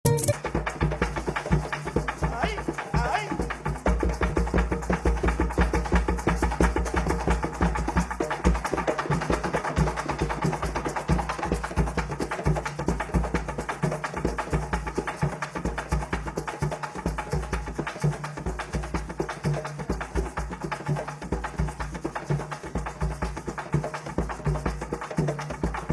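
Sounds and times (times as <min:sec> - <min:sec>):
drum ensemble playing: 0:00.0 - 0:14.3.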